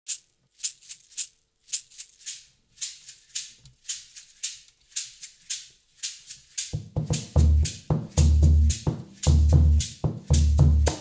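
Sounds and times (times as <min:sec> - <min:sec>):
percussion shaker rhythm: 0:00.1 - 0:11.0.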